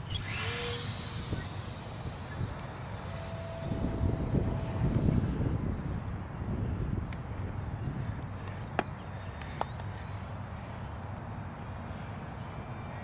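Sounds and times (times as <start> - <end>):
electric motor propeller whine: 0.0 - 6.8
wind rumble on microphone: 3.6 - 8.8.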